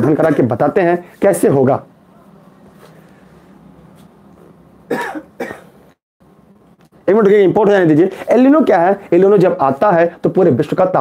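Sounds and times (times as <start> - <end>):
man coughing: 4.9 - 5.8.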